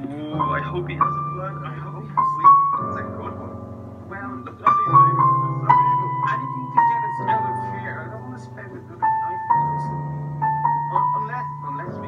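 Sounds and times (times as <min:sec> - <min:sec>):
digital piano treble melody: 0:00.0 - 0:12.0
low sustained piano bass: 0:00.0 - 0:12.0.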